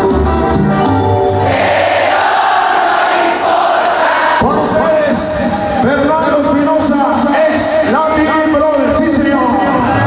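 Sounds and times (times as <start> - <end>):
crowd cheering and shouting: 1.4 - 6.1.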